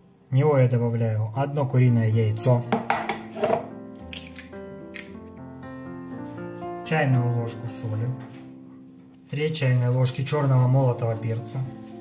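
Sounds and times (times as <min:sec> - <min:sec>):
soft guitar music: 0:01.8 - 0:12.0
eggshell cracking: 0:03.9 - 0:05.3.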